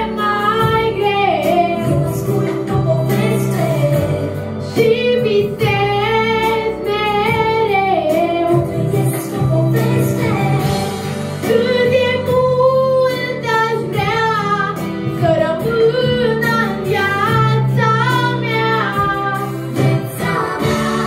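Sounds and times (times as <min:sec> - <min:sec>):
girl singing into microphone: 0:00.0 - 0:21.0
instrumental backing track: 0:00.0 - 0:21.0.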